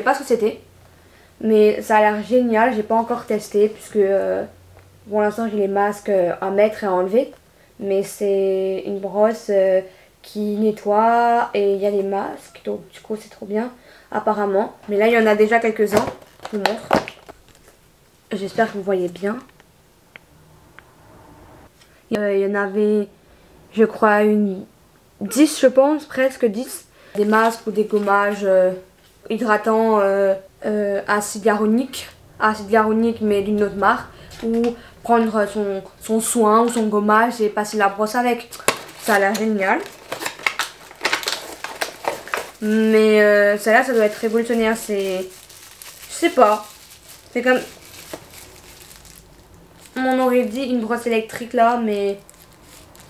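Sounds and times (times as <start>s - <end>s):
packaging rustle: 15.9s - 17.8s, 38.5s - 50.8s, 51.4s - 53.0s
packaging clicks: 38.5s - 42.9s, 43.8s - 50.0s.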